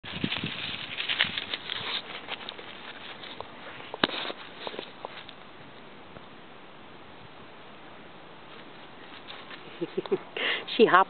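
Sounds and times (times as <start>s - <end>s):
paws crunching through dry leaves: 0.0s - 5.4s, 8.4s - 10.0s.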